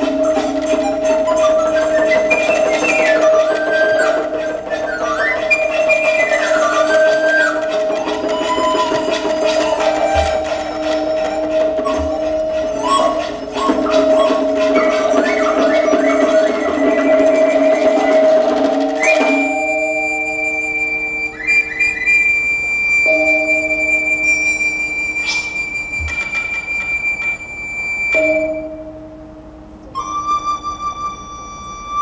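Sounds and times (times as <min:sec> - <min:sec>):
hammered dulcimer notes: 0:00.0 - 0:27.4
high flute tone: 0:00.0 - 0:32.0.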